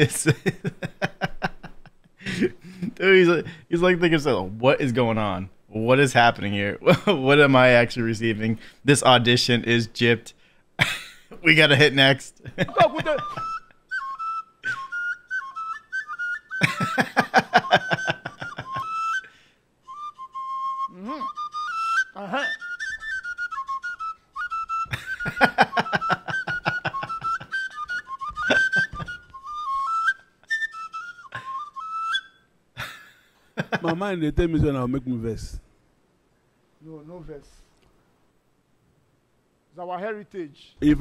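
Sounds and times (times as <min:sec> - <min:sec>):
high whistle playing a tune: 0:13.3 - 0:16.6, 0:18.8 - 0:25.4, 0:27.1 - 0:32.5.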